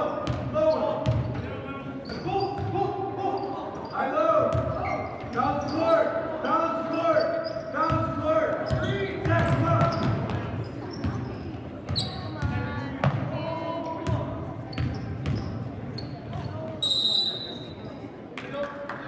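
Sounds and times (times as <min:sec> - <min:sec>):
referee's whistle: 0:16.8 - 0:17.8.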